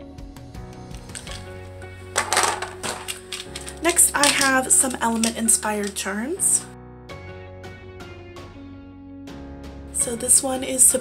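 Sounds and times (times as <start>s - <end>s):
clay charms clattering in plastic box: 1.1s - 1.5s, 2.2s - 6.7s.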